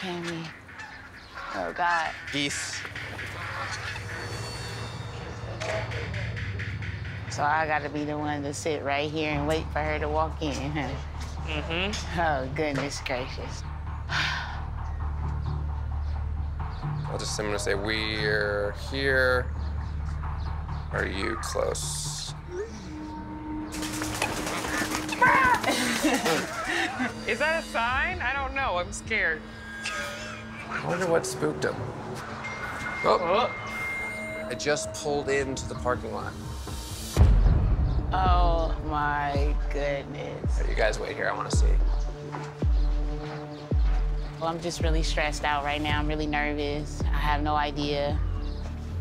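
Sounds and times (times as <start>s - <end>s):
geese honking: 0.0s - 4.8s
bird wings flapping: 23.7s - 27.0s
people exclaiming: 25.1s - 26.8s
people laughing: 25.2s - 27.3s.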